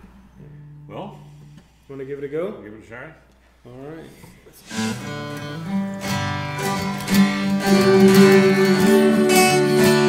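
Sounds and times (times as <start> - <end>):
acoustic guitars strumming: 4.6 - 10.0.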